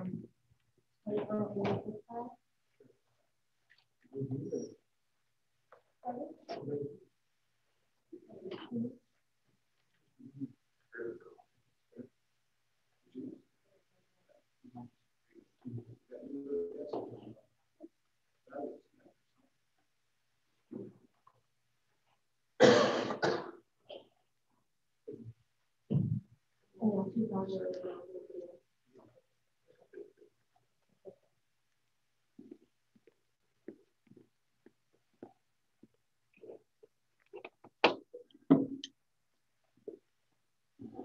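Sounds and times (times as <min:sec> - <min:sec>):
person coughing: 0:22.6 - 0:23.6.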